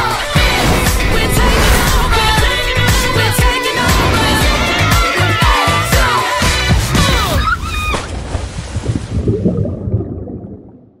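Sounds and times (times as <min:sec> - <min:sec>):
pop song: 0:00.0 - 0:07.6.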